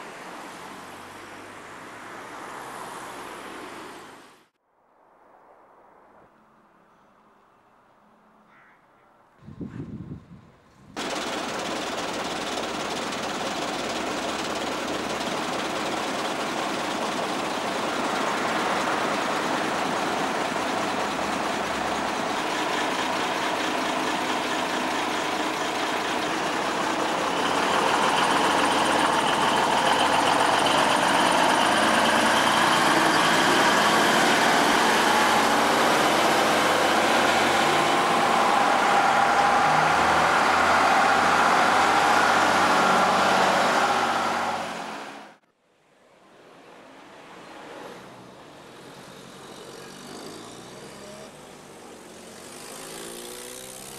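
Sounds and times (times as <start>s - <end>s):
truck engine running: 11.0s - 45.3s.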